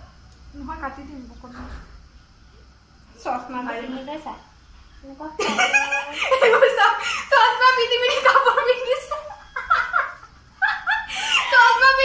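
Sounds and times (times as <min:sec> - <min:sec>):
young women squealing and laughing: 0:05.4 - 0:12.0.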